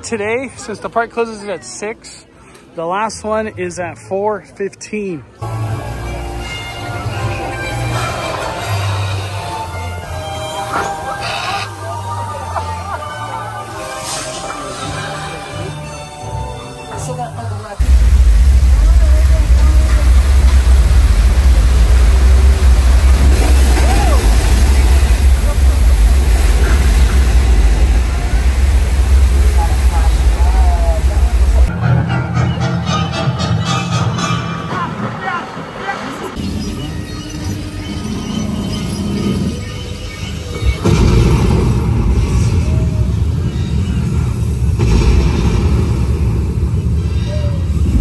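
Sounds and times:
propane fireball rumble: 0:17.8 - 0:31.7, 0:40.7 - 0:48.0
torrent of water rushing: 0:17.8 - 0:31.7.

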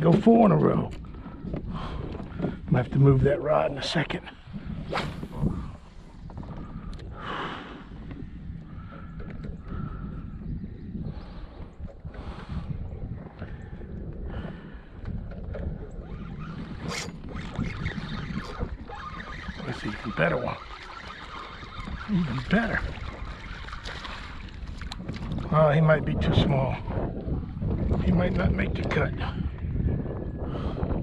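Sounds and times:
wind rumble on microphone: 0:00.0 - 0:31.0.

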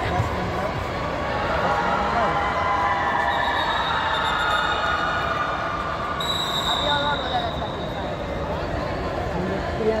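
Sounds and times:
crowd noise: 0:00.0 - 0:10.0
shrill whistle: 0:03.3 - 0:05.0, 0:06.2 - 0:08.1.

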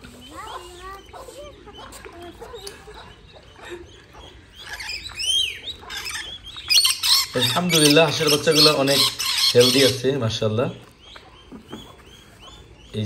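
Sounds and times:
shrill arching bird calls: 0:02.8 - 0:10.2.

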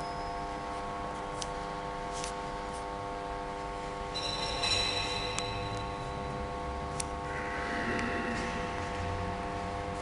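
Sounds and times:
hum of sustained tones: 0:00.0 - 0:10.0.

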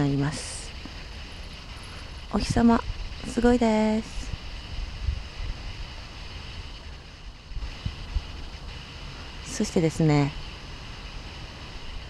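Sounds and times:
faint steady hiss: 0:00.0 - 0:12.0
wind buffeting microphone: 0:00.0 - 0:12.0.

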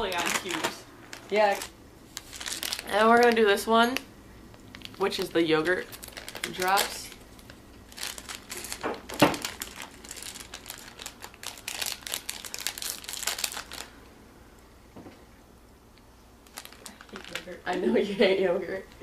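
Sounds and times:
wrapper snap: 0:00.0 - 0:13.9
candy wrapper crinkling: 0:00.0 - 0:14.0, 0:16.4 - 0:17.8.

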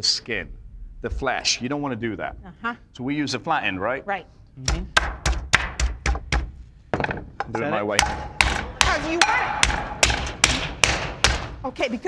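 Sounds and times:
meat mallet pounding meat: 0:04.7 - 0:06.6, 0:08.0 - 0:11.6.

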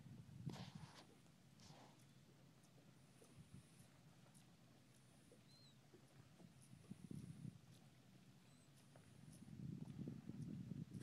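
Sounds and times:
faint high chirps: 0:05.4 - 0:05.8.

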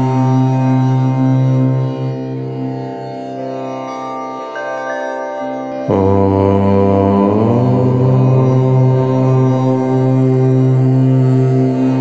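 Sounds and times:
meditative om chant: 0:00.0 - 0:12.0.

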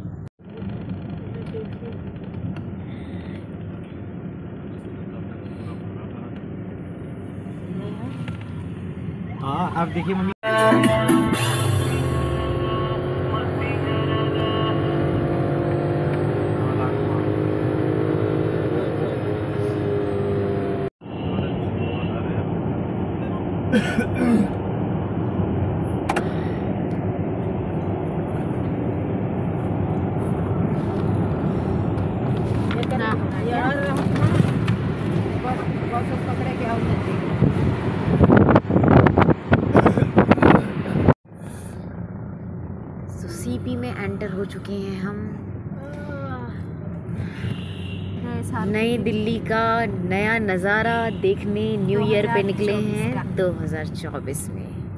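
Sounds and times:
car road and engine noise: 0:00.0 - 0:54.9
music with singing from car stereo: 0:10.4 - 0:12.4.

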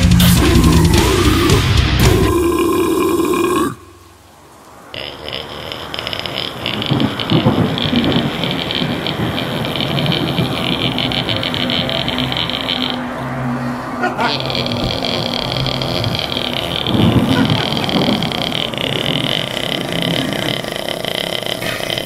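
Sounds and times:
heavy metal band music: 0:00.0 - 0:03.8
steady high hiss: 0:00.0 - 0:13.4, 0:14.4 - 0:22.0
guttural belch-like vocal noise: 0:00.2 - 0:04.1, 0:04.9 - 0:13.0, 0:14.0 - 0:22.0.

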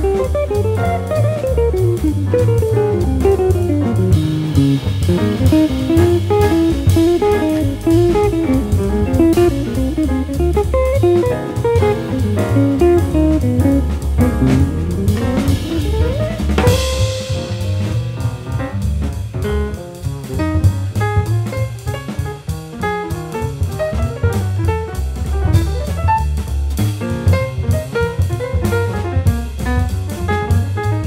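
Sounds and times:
drum kit: 0:00.0 - 0:31.0
walking bass: 0:00.0 - 0:31.0.

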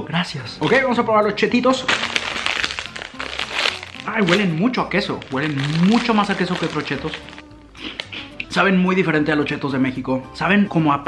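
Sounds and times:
background music: 0:00.0 - 0:11.0
snack bag crinkling: 0:01.8 - 0:08.2.

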